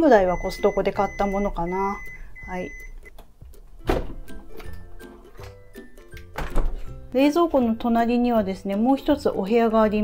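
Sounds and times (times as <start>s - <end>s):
background music: 0.0s - 10.0s
refrigerator door closing thump: 3.8s - 4.3s, 6.4s - 6.8s.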